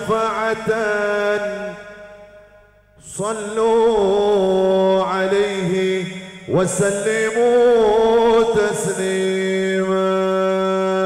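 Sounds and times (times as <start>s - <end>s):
man singing into a microphone: 0.0s - 1.8s, 3.0s - 11.0s.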